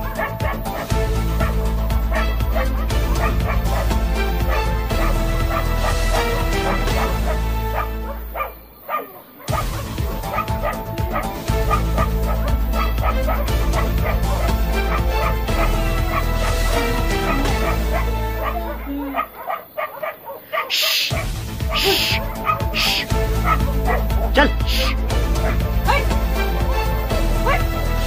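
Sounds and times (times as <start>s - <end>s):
music with deep bass: 0.0s - 8.8s, 9.5s - 19.4s, 21.1s - 28.0s
dogs barking and yelping: 0.0s - 28.0s.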